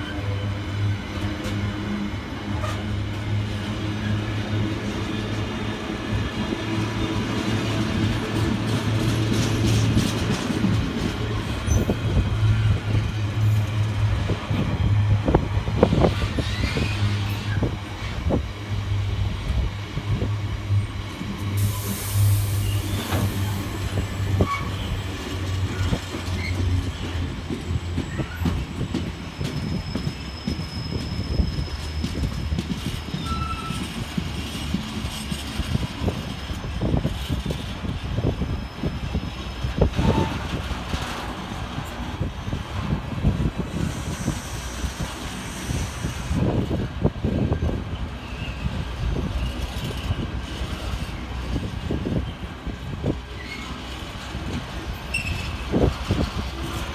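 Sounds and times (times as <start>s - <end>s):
freight train rolling past: 0.0s - 56.9s
faint wheel squeals: 27.7s - 34.0s, 53.3s - 54.0s, 55.0s - 56.5s.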